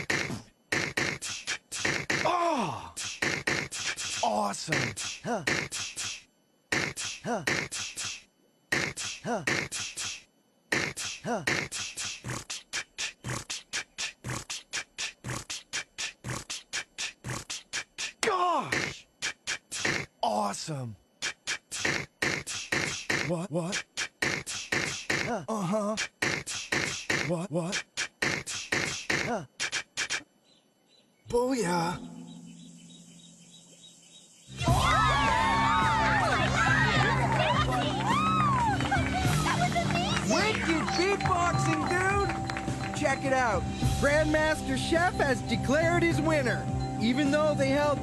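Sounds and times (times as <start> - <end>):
beatboxing into a microphone: 0.0 - 2.3, 3.0 - 20.1, 21.2 - 30.3
crickets chirping: 30.4 - 34.6, 40.3 - 48.0.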